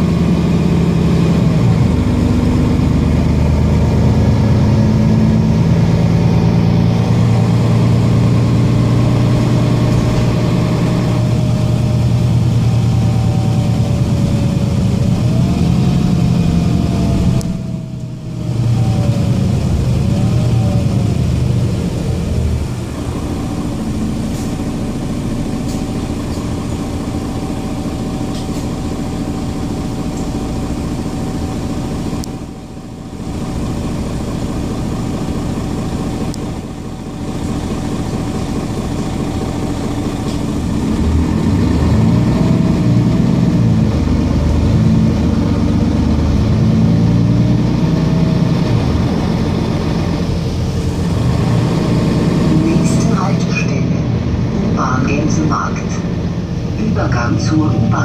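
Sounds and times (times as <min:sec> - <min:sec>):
bus diesel engine running: 0:00.0 - 0:58.0.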